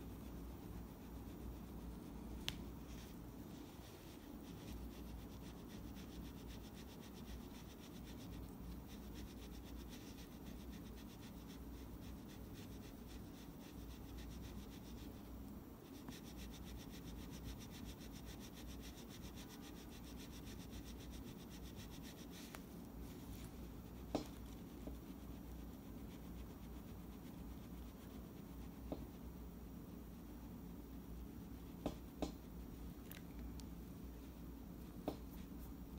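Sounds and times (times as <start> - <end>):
cloth rubbing on small screw: 15.8 - 32.7.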